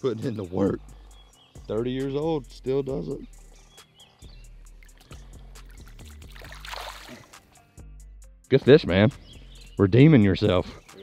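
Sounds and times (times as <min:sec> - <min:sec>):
music with steady beat: 0:00.0 - 0:11.0
fish splashing in water: 0:05.0 - 0:07.5.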